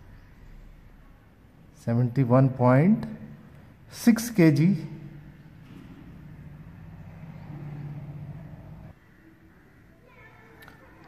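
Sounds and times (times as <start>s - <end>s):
low steady hum: 4.6s - 9.8s.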